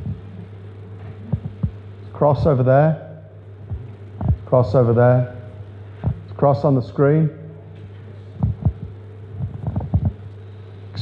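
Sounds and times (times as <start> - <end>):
low electrical hum: 0.0 - 11.0
soft dull thumps: 3.7 - 4.4, 8.4 - 10.2.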